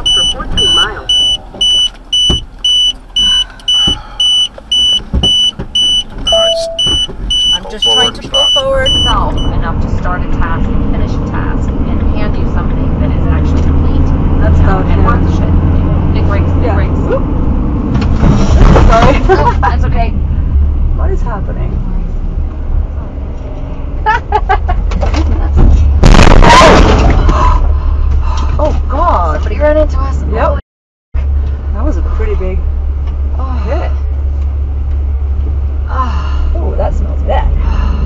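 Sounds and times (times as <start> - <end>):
people talking: 0.0 - 1.6, 6.3 - 17.3, 18.6 - 20.2, 21.0 - 21.8, 28.3 - 30.6, 31.8 - 32.6, 33.4 - 34.1, 35.9 - 37.9
car road and engine rumble: 0.0 - 30.6, 31.2 - 38.0
loud burst of noise: 26.0 - 27.2.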